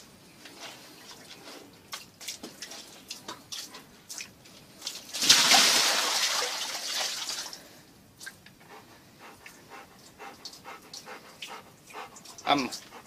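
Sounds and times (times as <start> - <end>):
water sloshing in plastic basin: 0.6 - 7.6
dog panting: 8.6 - 13.0.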